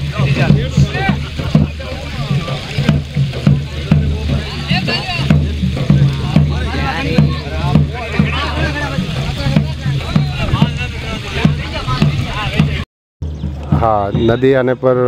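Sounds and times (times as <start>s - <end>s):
people chanting and singing: 0.0s - 12.8s
drum beating a steady rhythm: 0.0s - 15.0s.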